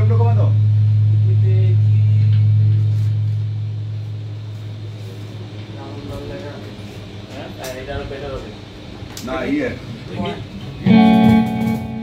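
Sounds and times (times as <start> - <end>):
electric guitar note: 0.0 - 5.6, 10.8 - 12.0.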